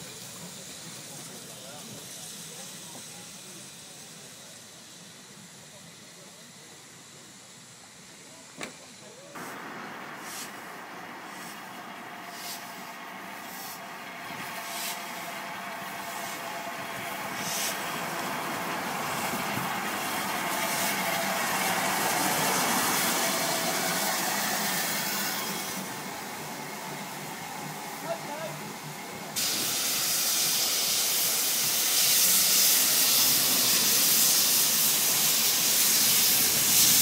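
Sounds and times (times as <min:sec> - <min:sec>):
steam hiss: 0:00.0 - 0:37.0
steam locomotive rumble: 0:00.0 - 0:37.0.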